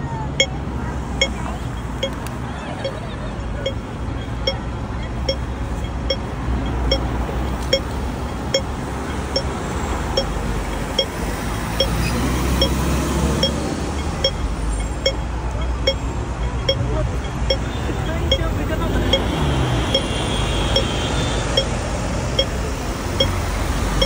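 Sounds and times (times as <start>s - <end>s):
road traffic rumble: 0.0s - 24.0s
crossing signal pipping: 0.3s - 24.0s.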